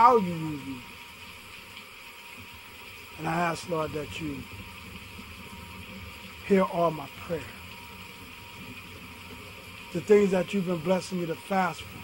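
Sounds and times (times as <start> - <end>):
man speaking: 0.0 - 0.8, 3.2 - 4.5, 6.5 - 7.6, 10.0 - 12.0
background hiss: 0.0 - 12.0.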